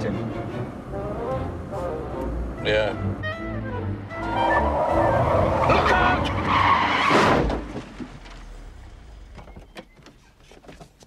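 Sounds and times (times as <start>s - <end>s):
music playing: 0.0s - 6.4s
car tyres squealing: 4.1s - 10.5s
loud crash: 4.3s - 9.2s.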